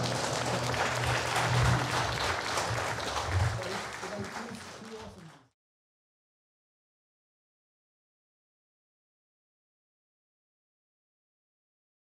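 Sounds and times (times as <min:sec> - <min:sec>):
audience applauding: 0:00.0 - 0:05.5.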